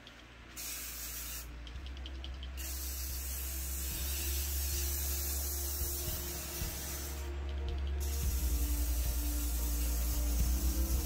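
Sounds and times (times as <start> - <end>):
spray paint can hissing: 0.0 - 11.0.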